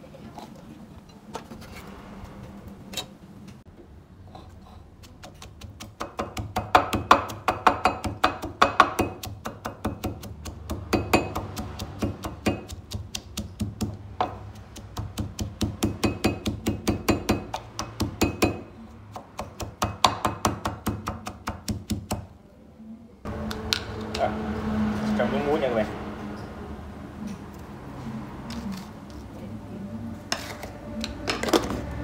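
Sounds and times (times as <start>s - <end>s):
pestle pounding in a mortar: 5.0s - 22.3s.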